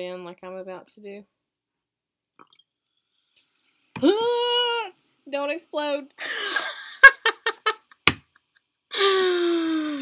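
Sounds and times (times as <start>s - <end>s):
woman exclaiming loudly: 4.0s - 4.9s.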